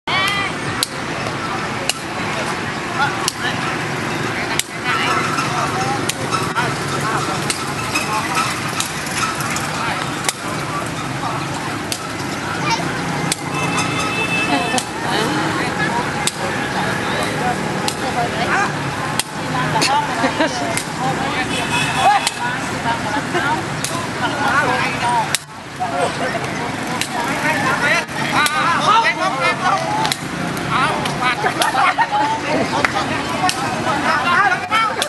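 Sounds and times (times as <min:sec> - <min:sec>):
motorbikes: 0:00.0 - 0:35.0
people talking: 0:00.0 - 0:35.0
steady traffic: 0:00.0 - 0:35.0.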